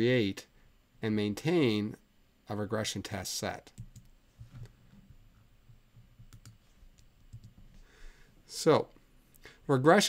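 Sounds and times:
low room hum: 0.0 - 10.0
computer clicks: 3.8 - 4.7, 6.2 - 7.6.

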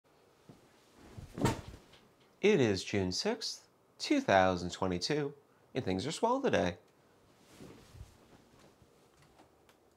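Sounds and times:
office chair knocks and creaks: 1.1 - 2.0.

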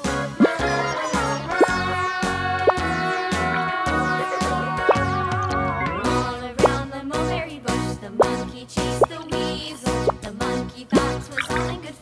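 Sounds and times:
upbeat children's music: 0.0 - 12.0
upward-sweeping plop blips: 0.4 - 5.6, 6.5 - 6.8, 11.0 - 11.7.

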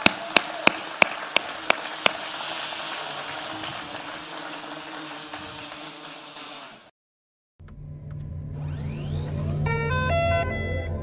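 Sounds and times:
low bass drone: 7.6 - 11.0.

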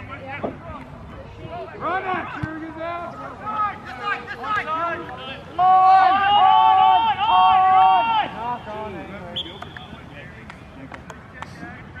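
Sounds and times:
faint shouts and voices: 0.0 - 10.8.

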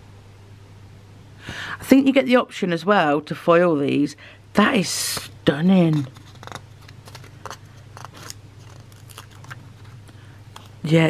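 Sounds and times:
low steady hum: 0.0 - 11.0
plastic sheet crinkling and clicking: 5.8 - 10.9.

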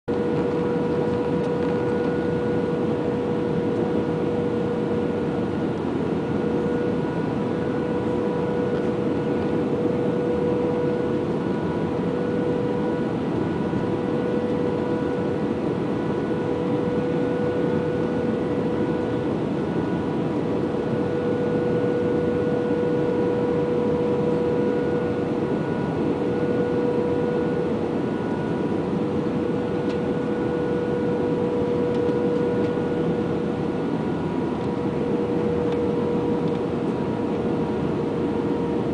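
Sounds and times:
aircraft engine drone: 0.1 - 38.9
constant hum: 0.1 - 38.9.

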